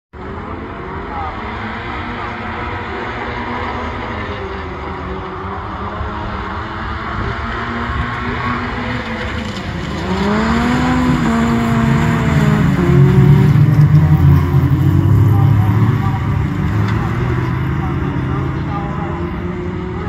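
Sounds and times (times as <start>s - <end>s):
race car engines revving: 0.1s - 20.0s.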